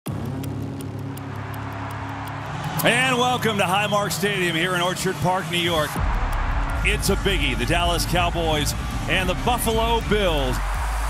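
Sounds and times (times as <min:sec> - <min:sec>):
regular high ticking: 0:00.1 - 0:11.0.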